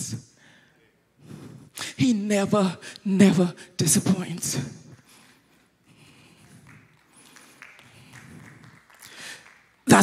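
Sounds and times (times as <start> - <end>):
woman speaking into a microphone: 1.9 - 4.9.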